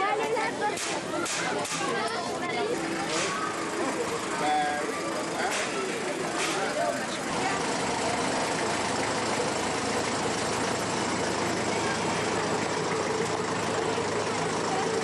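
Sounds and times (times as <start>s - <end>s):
street crowd chatter: 0.0s - 15.0s
vehicle engine running: 0.0s - 15.0s.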